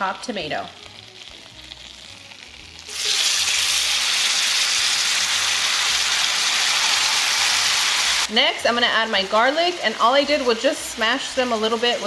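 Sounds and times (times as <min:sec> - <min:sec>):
vegetables sizzling in pan: 0:00.0 - 0:12.0.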